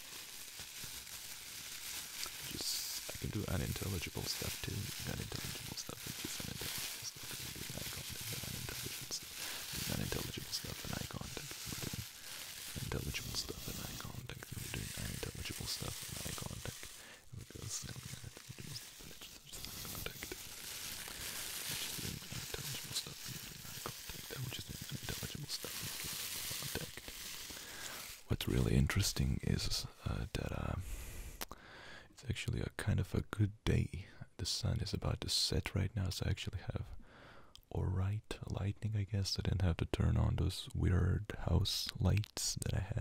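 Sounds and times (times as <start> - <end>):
man whispering and mumbling: 1.9 - 43.0.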